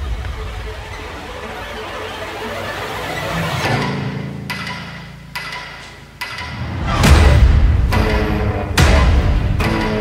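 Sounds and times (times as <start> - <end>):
eerie low tone music: 0.0 - 10.0.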